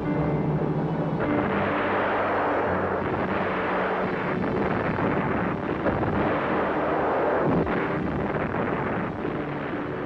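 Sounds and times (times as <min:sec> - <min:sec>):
heavy rumble: 0:00.0 - 0:10.0.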